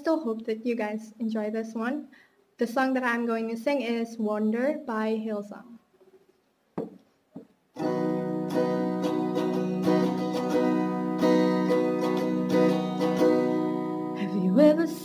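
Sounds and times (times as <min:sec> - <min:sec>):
acoustic guitar strumming: 0:07.8 - 0:15.0
woman singing: 0:14.2 - 0:15.0.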